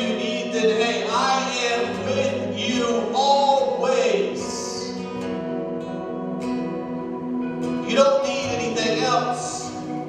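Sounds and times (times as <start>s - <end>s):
man singing: 0.0s - 5.0s, 7.8s - 9.8s
acoustic guitar: 0.0s - 10.0s.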